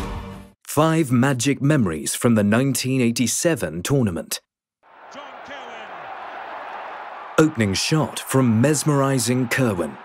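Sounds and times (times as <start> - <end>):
stadium crowd cheering: 4.8 - 10.0
people shouting: 4.9 - 10.0.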